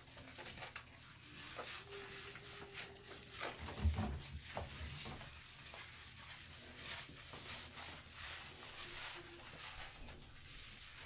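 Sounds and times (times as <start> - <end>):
hand scrubbing lather into fur: 0.0 - 11.0.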